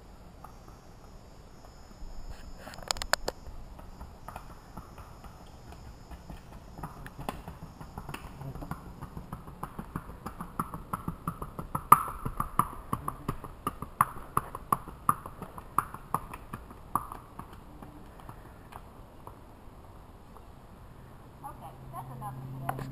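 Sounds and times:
horse hoofbeats on paved road: 3.4 - 19.6.

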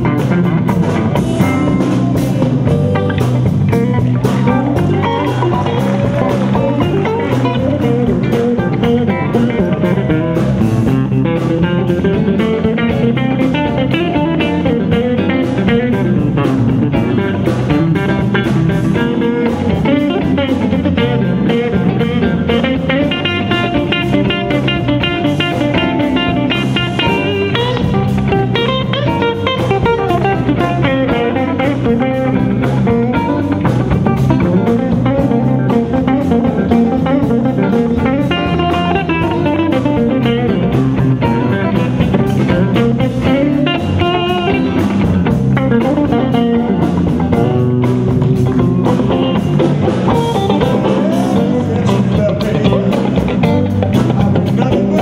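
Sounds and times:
bass guitar: 0.0 - 55.0
drums: 0.0 - 55.0
electric guitar runs: 0.0 - 55.0.

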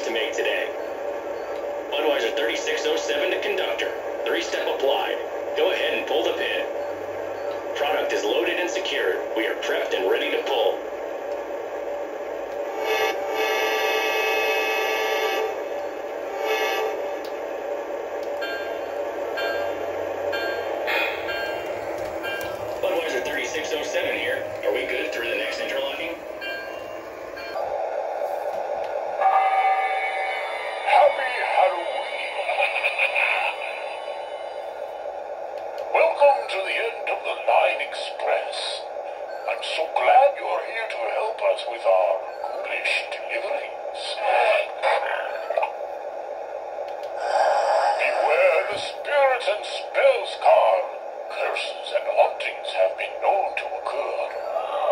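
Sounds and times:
radio-style crew chatter: 0.0 - 13.0, 17.1 - 29.1, 30.3 - 54.9
toy train diesel engine drone: 0.0 - 28.6, 29.2 - 45.8, 47.0 - 54.9
train horn blasts: 12.7 - 17.2, 29.2 - 30.5.

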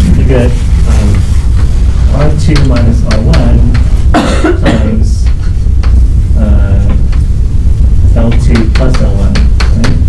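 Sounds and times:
man coughing: 4.1 - 5.1.

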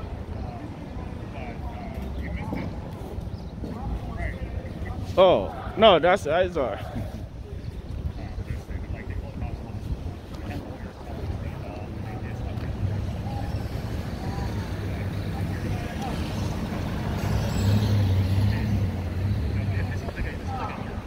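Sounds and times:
distant crowd voices: 0.0 - 21.0
vehicle engine rumble: 0.0 - 21.0.

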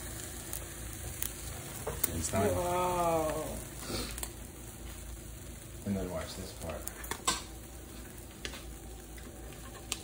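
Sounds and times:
sharp pops and crackles: 0.0 - 5.8, 6.4 - 10.0
faint steady background noise: 0.0 - 10.0
food sizzling on electric grill: 0.0 - 10.0.

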